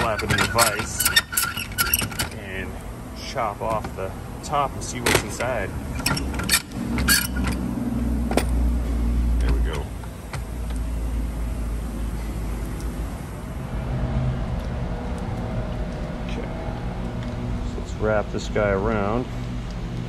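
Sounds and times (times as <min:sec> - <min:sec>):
bench vise metal clicks and clanks: 0:00.0 - 0:02.4
handling noise: 0:00.0 - 0:03.0.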